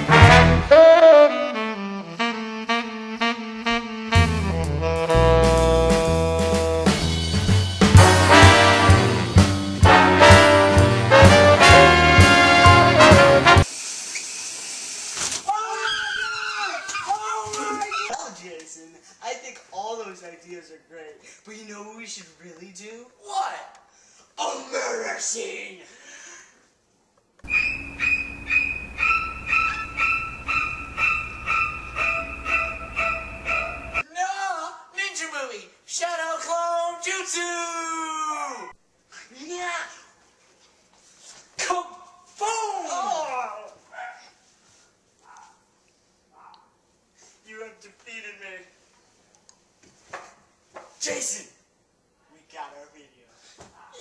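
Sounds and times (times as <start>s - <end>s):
person screaming: 15.5s - 18.2s, 42.4s - 43.7s
high yelping cry: 15.6s - 18.2s, 27.4s - 34.0s.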